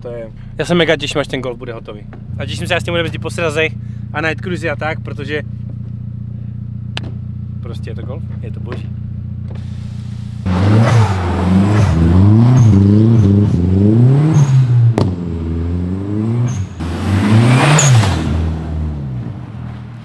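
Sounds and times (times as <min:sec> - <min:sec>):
car engine revving: 0:00.5 - 0:20.0.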